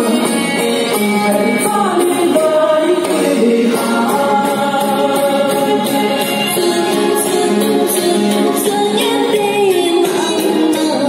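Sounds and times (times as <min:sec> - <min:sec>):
woman singing into microphone: 0:00.0 - 0:11.0.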